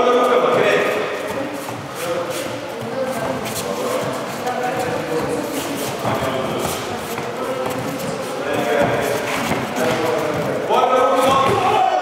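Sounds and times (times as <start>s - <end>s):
indistinct voices echoing: 0.0s - 12.0s.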